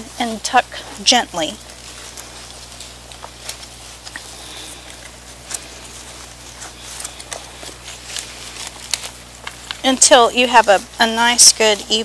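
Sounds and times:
soil crackling and rustling: 0.0 - 12.0.

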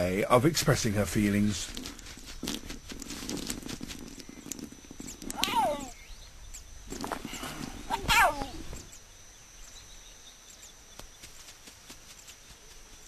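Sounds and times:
rapid spattering patter: 0.0 - 6.0
baboon call: 7.9 - 8.7.

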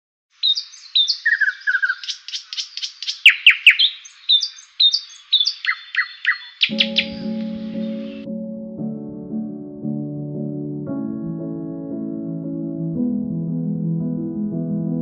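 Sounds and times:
birds chirping and whistling: 0.4 - 8.3
soft music with held chords: 6.7 - 15.0.

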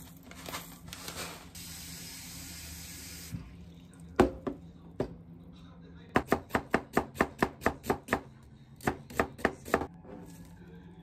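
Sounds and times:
knife chopping on cutting board: 6.2 - 9.9.

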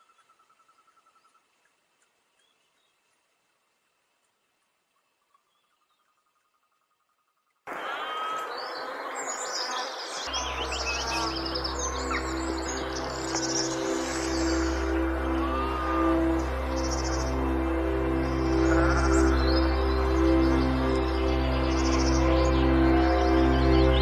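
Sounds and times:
background hiss: 0.0 - 22.8
birds chirping: 5.2 - 24.0
ambient synth music: 7.7 - 24.0.

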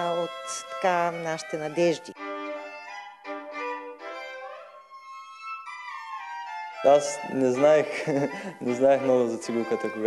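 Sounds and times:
violin playing slow melody: 0.0 - 10.0.

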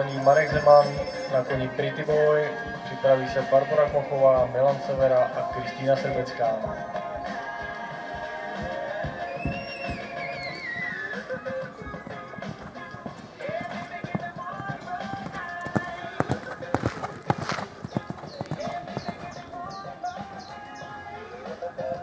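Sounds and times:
horse hoofbeats on sand: 0.0 - 2.4, 8.2 - 21.0
music over public address: 0.0 - 22.0.

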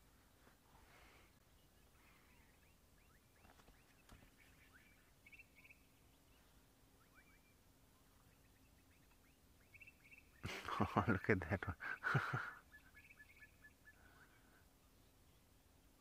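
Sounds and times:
quiet bush ambience: 0.0 - 16.0
faint bird chirps and trill: 0.7 - 16.0.

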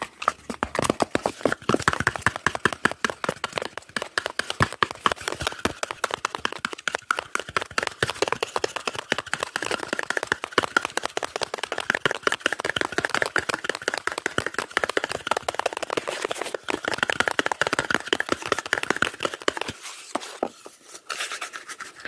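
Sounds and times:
quick hand taps and flicks: 0.8 - 19.8.

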